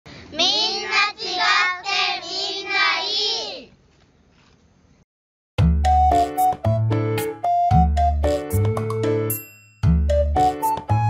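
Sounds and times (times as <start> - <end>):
children singing a jingle: 0.4 - 3.7.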